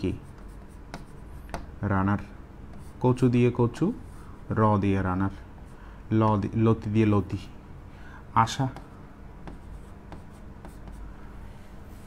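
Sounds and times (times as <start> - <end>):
low room hum: 0.0 - 12.0
marker pen scratching on board: 0.1 - 1.7, 2.7 - 3.1, 8.7 - 11.1.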